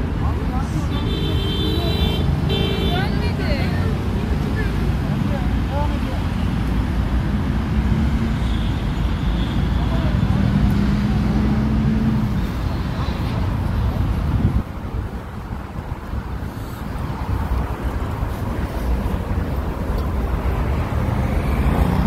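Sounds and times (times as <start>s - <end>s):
road traffic rumble: 0.0s - 22.0s.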